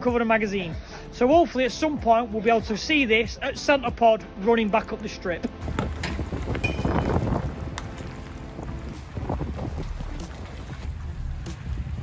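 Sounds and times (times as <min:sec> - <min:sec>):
wind buffeting microphone: 0:05.6 - 0:12.0.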